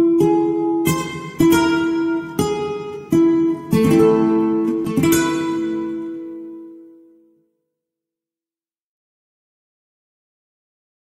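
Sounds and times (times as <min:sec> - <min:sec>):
acoustic guitar chords ringing: 0:00.0 - 0:07.5.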